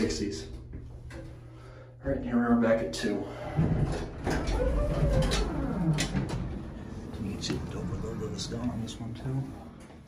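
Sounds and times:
elevator door sliding open: 0:03.3 - 0:09.0
low rumble: 0:03.4 - 0:09.8.

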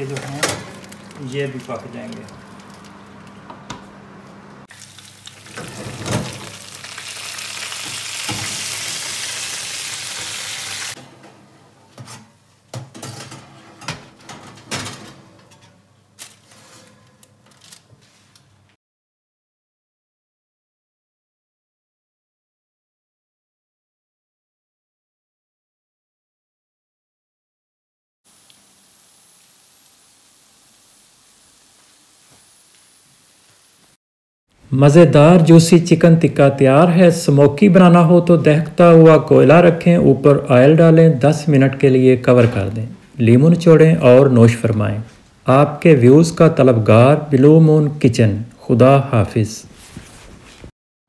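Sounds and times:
oven clunk: 0:00.0 - 0:02.2, 0:05.5 - 0:06.6, 0:12.0 - 0:15.8
chicken sizzling in oven: 0:00.0 - 0:11.0, 0:28.3 - 0:34.0.

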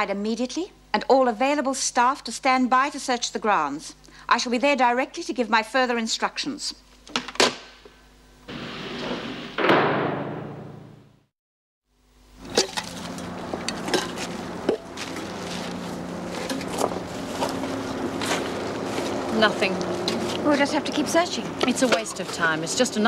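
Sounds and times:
rising noise ending in bang: 0:08.5 - 0:11.1
steady low hum: 0:12.0 - 0:23.0
hands rustling through grass: 0:13.0 - 0:22.5.

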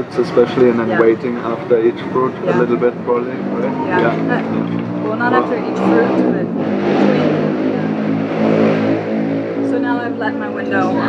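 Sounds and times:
person speaking: 0:00.0 - 0:06.5
vehicle engine running: 0:00.0 - 0:11.0.

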